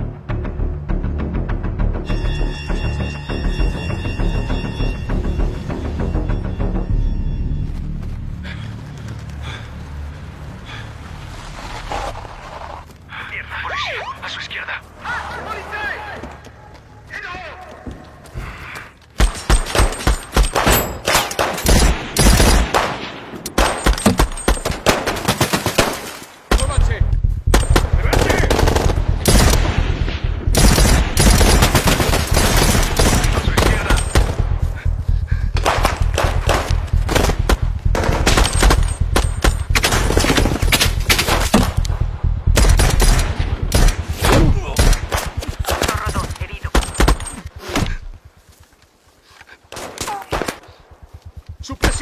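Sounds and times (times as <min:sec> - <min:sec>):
deep low rumble: 0:26.8 - 0:31.5, 0:33.5 - 0:44.6.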